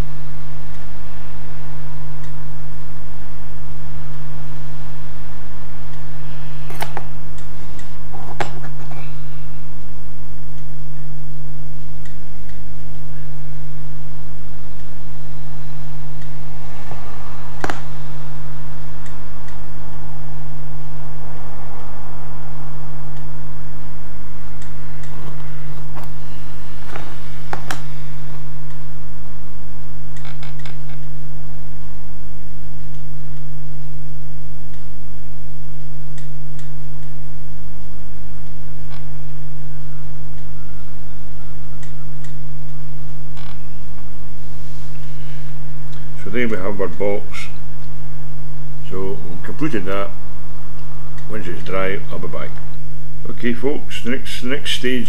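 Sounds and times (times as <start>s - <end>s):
low electrical hum: 0.0s - 55.0s.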